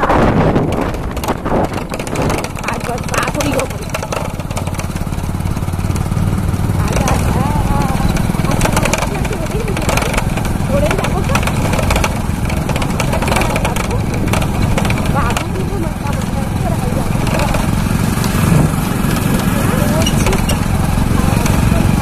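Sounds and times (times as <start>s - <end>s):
vehicle engine running: 0.0s - 22.0s.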